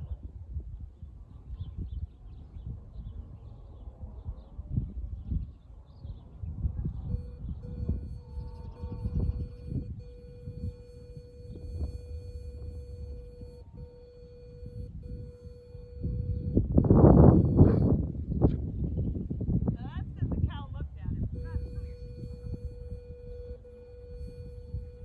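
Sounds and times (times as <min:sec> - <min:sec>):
steady electronic tone: 0:06.9 - 0:18.0, 0:21.3 - 0:25.0.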